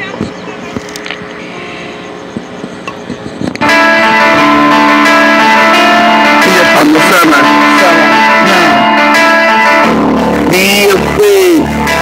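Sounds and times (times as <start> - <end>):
loud music with guitar: 3.0 - 12.0.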